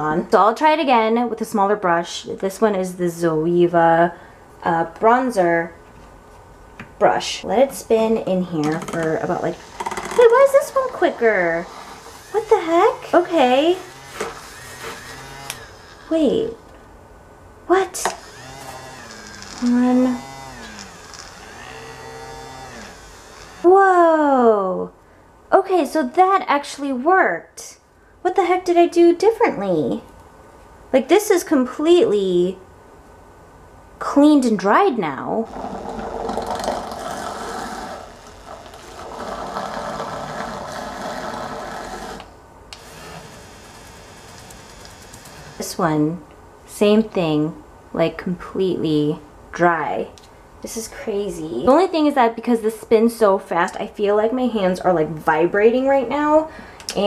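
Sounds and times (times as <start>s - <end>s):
electric brush spinner humming: 8.8s - 16.7s, 17.9s - 23.8s, 35.4s - 46.1s.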